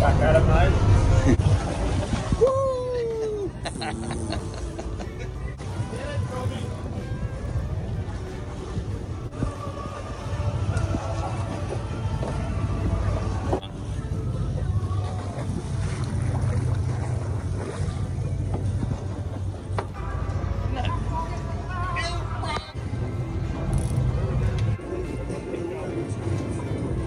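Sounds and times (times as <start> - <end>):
boat engine droning: 0.0 - 27.0
wind: 0.0 - 27.0.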